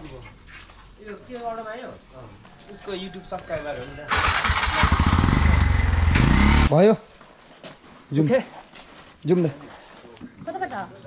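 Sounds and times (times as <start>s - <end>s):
motorcycle engine starting: 4.0s - 6.7s.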